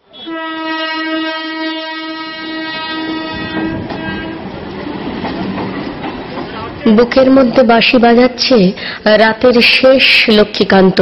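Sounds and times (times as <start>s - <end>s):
train running along track: 0.0s - 11.0s
train horn blast: 0.1s - 4.6s.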